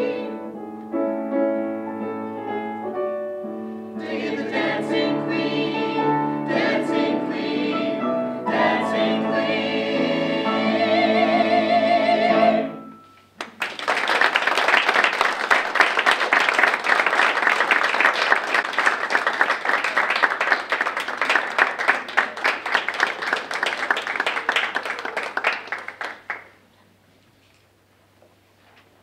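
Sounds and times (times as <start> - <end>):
mixed choir singing chord: 0.0 - 0.6, 3.4 - 13.0
audience applause: 13.4 - 26.6.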